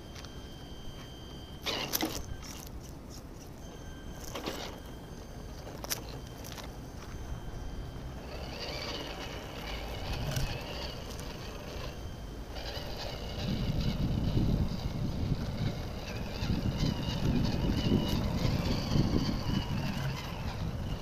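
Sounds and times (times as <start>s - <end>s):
electric motor whining: 0.0s - 21.0s.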